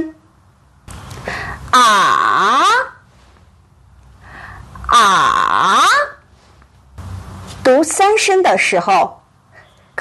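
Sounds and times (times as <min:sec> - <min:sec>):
breathy sound: 0:01.1 - 0:01.7, 0:04.1 - 0:04.9
woman holding a vowel: 0:01.7 - 0:03.0.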